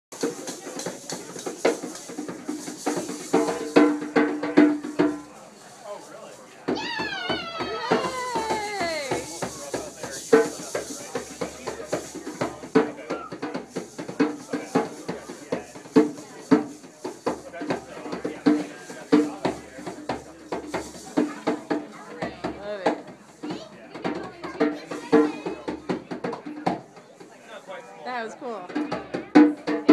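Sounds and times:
hand drum rhythm: 0:00.1 - 0:05.4, 0:06.7 - 0:27.4, 0:28.3 - 0:29.9
people talking: 0:00.2 - 0:03.8, 0:04.7 - 0:26.6, 0:27.2 - 0:29.9.

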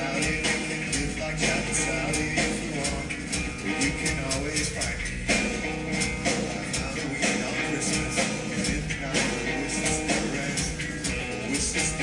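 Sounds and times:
live rock band music: 0:00.0 - 0:12.0.

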